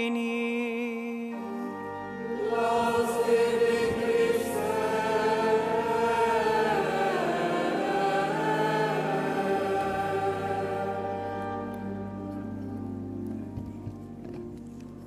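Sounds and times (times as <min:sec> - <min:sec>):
choir singing: 0:02.0 - 0:12.3.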